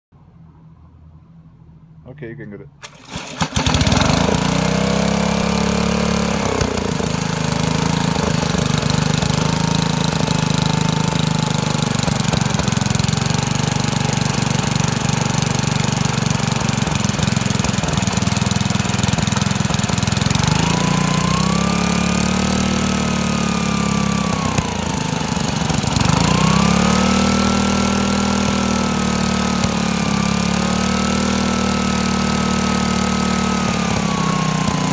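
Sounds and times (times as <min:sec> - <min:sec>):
small engine running: 0:02.8 - 0:34.9.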